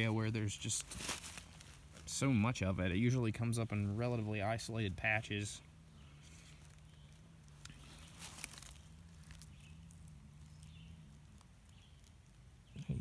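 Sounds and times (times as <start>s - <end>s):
hands rustling in dry leaves: 0.0s - 12.8s
low steady hum: 0.0s - 13.0s.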